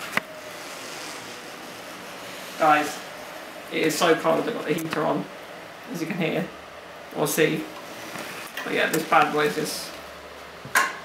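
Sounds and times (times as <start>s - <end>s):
wheelchair motors whining: 0.0s - 5.8s, 6.4s - 10.7s
room heater rushing: 0.0s - 11.0s.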